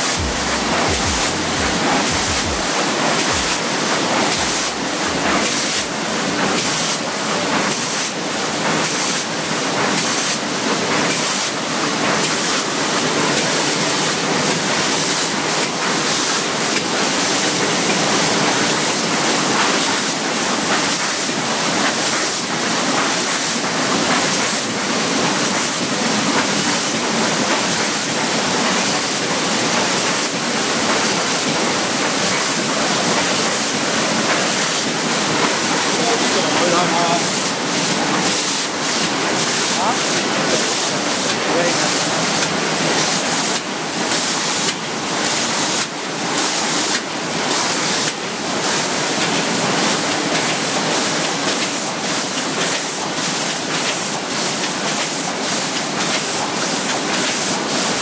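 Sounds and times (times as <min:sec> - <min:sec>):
printing press running: 0:00.0 - 0:58.0.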